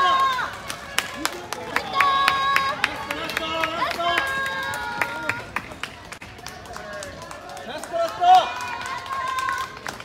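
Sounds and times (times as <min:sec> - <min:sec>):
spectators clapping: 0:00.0 - 0:10.0.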